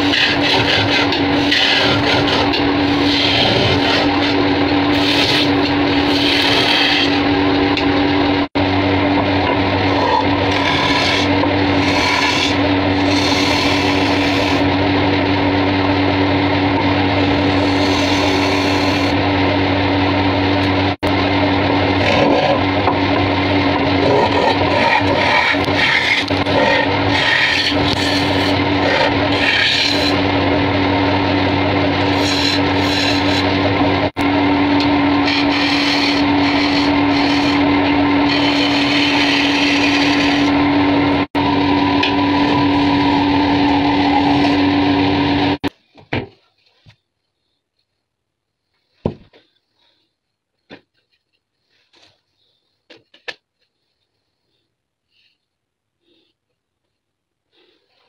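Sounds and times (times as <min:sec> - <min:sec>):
tool scraping spinning wood: 0:00.0 - 0:45.7
wood lathe humming: 0:00.0 - 0:45.7.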